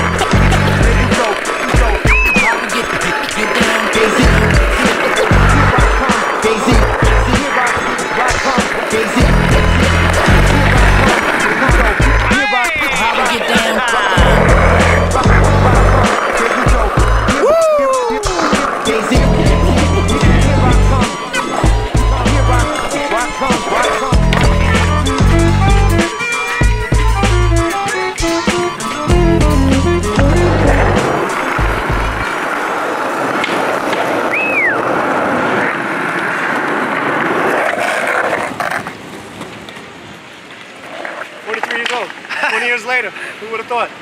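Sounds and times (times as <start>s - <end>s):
hip-hop track with heavy bass: 0.0s - 32.2s
skateboard wheels rolling on stone: 0.0s - 43.1s.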